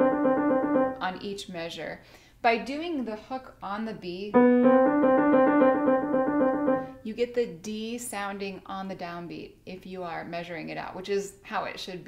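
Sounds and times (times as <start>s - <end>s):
grand piano trill: 0.0s - 1.0s, 4.3s - 7.0s.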